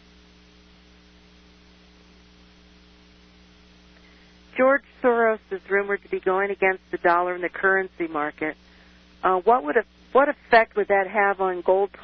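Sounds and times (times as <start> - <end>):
faint mains hum: 0.0 - 12.0
low hiss: 0.0 - 12.0.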